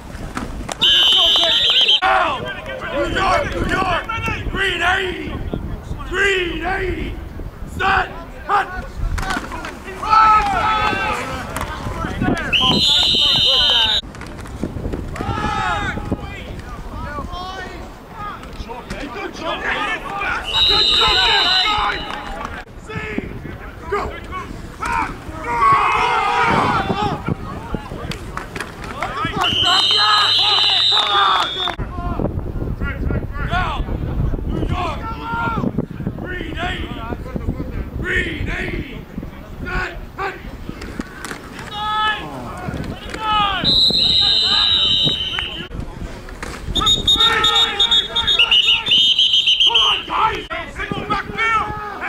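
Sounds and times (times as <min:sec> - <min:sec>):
referee whistle blast: 0:00.8 - 0:02.0, 0:12.5 - 0:14.0, 0:20.4 - 0:22.4, 0:29.4 - 0:31.8, 0:43.6 - 0:45.7, 0:46.8 - 0:50.2
players shouting: 0:00.8 - 0:14.0, 0:15.1 - 0:32.2, 0:34.6 - 0:37.0, 0:39.6 - 0:45.7, 0:46.4 - 0:52.0.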